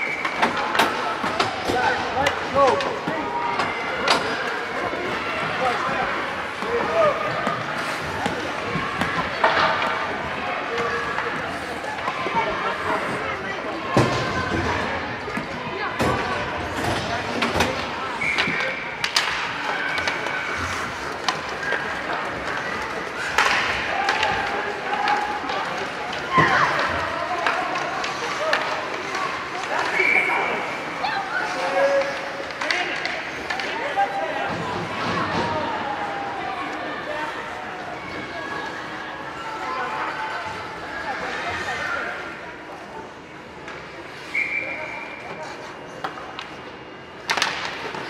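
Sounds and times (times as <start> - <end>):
skates on ice: 0.0 - 39.7
hockey sticks knocking puck: 16.8 - 30.2, 47.2 - 48.0.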